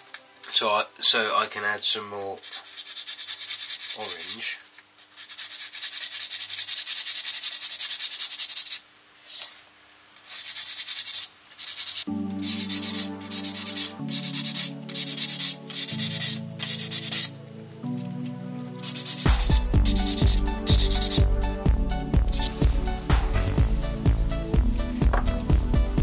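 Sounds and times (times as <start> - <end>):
background music with slow chords: 0.0 - 1.6, 12.1 - 26.0
abrasive pad sanding wood: 2.2 - 9.5, 10.2 - 17.4, 18.8 - 24.8.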